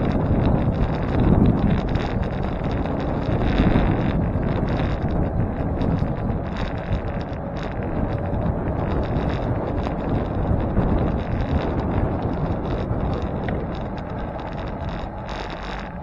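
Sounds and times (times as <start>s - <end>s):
light rattles: 0.0s - 16.0s
road rumble: 0.0s - 16.0s
wind buffeting microphone: 0.0s - 16.0s.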